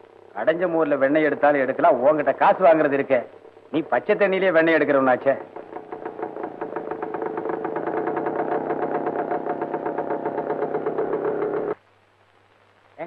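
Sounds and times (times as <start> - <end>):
motorcycle engine running: 5.0 - 11.8.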